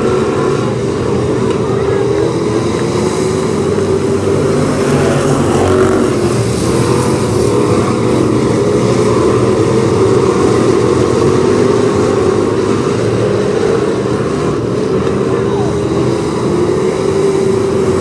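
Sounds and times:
race car engines droning: 0.0s - 18.0s.

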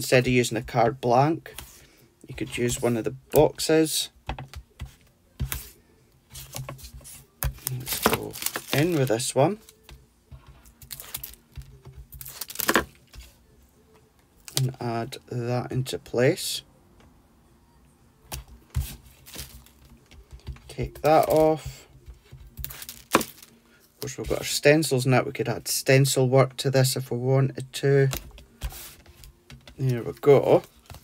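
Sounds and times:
card strips rubbing and rustling: 4.8s - 13.4s, 18.7s - 24.6s
card rustling and tapping: 6.3s - 13.3s.

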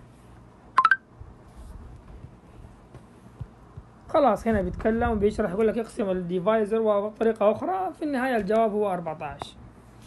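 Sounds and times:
electronic chime beeps rising: 0.8s - 1.0s.

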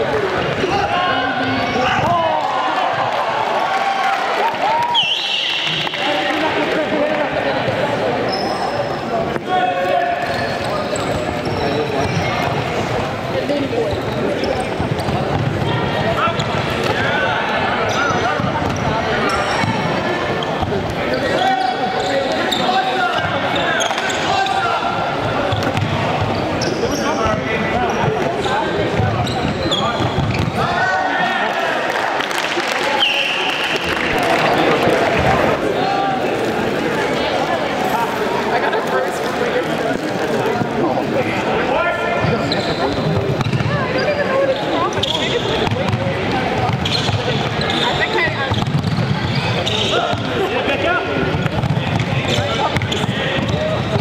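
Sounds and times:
spectators talking: 0.0s - 54.0s.

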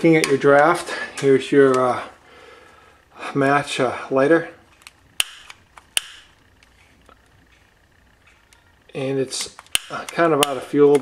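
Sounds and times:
lighter piezo clicking: 4.8s - 8.7s, 9.4s - 11.0s.

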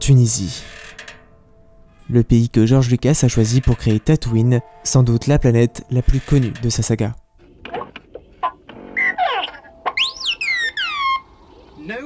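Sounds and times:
swooping electronic whistle: 9.0s - 11.5s
robot beeps and chirps: 9.0s - 11.7s.

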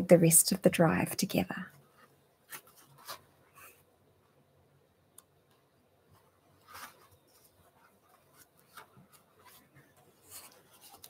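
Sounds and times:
book pages rustling: 1.9s - 3.8s, 6.1s - 11.0s.

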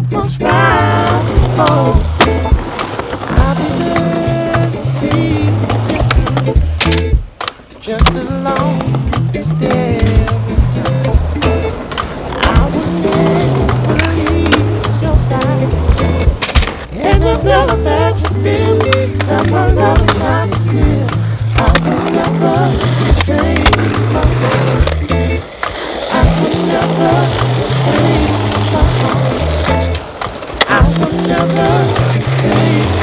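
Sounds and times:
music with steady bass line: 0.0s - 2.7s, 3.4s - 25.4s, 26.2s - 30.0s, 30.7s - 33.0s
skateboard wheels rolling on concrete: 0.0s - 33.0s
skateboard clacks: 0.5s - 33.0s.

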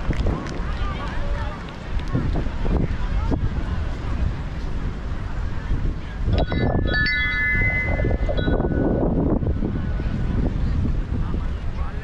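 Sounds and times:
wind rumbling on microphone: 0.0s - 12.0s
chimes ringing: 6.4s - 9.3s.

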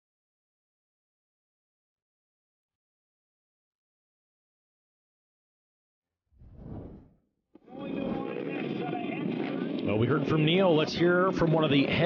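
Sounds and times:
people talking: 7.7s - 12.0s.

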